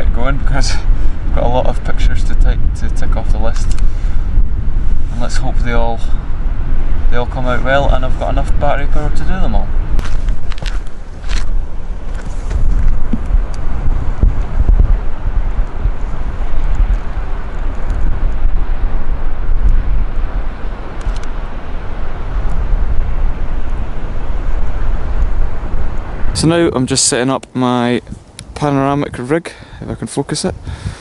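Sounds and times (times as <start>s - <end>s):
wind buffeting microphone: 0.0s - 31.0s
footsteps: 10.0s - 13.3s.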